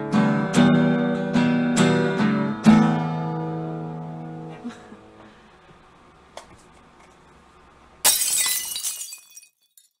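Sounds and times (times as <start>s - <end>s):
glass shattering: 8.0s - 10.0s.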